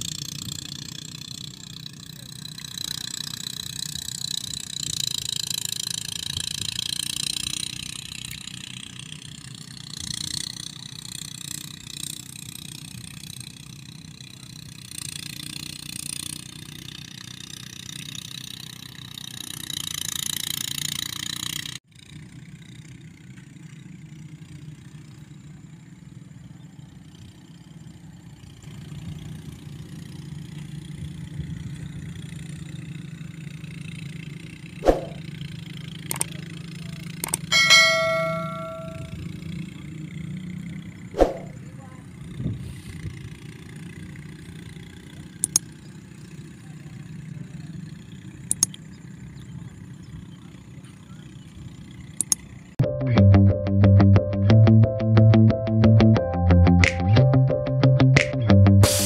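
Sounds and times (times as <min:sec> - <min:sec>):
thresher engine running: 0:00.0 - 0:52.8.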